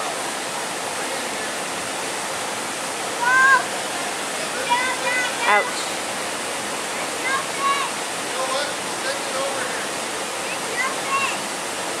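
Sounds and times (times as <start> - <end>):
brook water running: 0.0 - 12.0.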